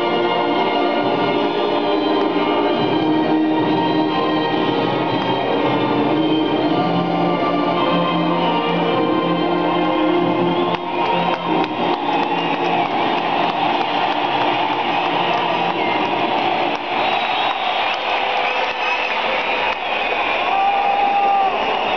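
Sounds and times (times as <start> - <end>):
music over loudspeakers: 0.0 - 17.6
large crowd noise: 0.0 - 21.9
crowd whistles: 5.0 - 21.9.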